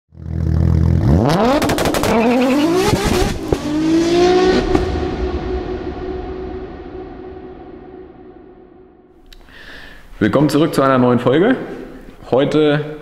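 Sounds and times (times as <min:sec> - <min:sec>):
exhaust cracks: 0:00.1 - 0:09.5
car engine revving: 0:00.2 - 0:09.0.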